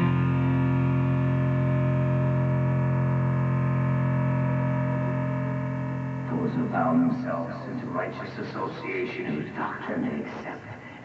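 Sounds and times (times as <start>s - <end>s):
distorted electric guitar drone: 0.0s - 10.9s.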